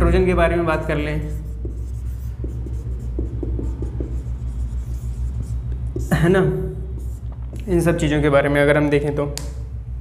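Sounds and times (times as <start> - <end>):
steady low hum: 0.0 - 10.0
marker squeaking on whiteboard: 1.3 - 6.2, 7.0 - 7.7.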